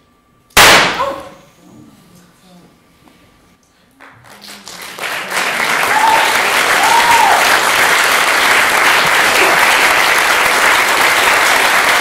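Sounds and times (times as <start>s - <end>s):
loud gunshot ringing: 0.6s - 1.4s.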